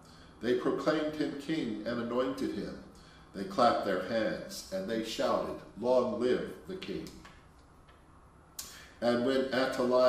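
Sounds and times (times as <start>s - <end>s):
sharp click: 8.6s - 8.8s.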